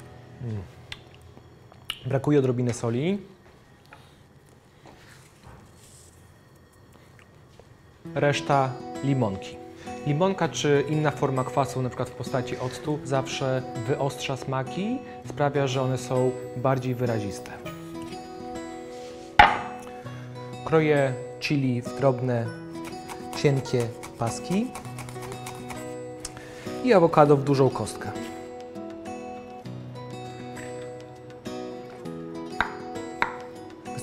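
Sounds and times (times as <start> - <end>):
soft guitar music: 8.0 - 34.0
knock on wooden cutting board: 19.4 - 19.7, 32.6 - 33.4.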